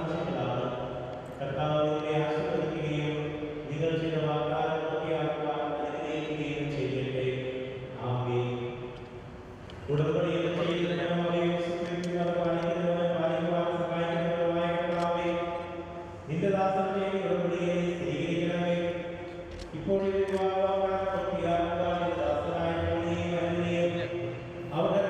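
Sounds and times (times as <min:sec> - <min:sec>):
man chanting: 0:00.0 - 0:08.8, 0:09.9 - 0:15.7, 0:16.3 - 0:25.0.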